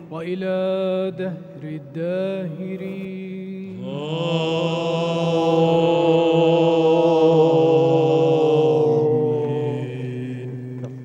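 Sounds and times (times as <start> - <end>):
voices chanting a long note: 3.7 - 11.0.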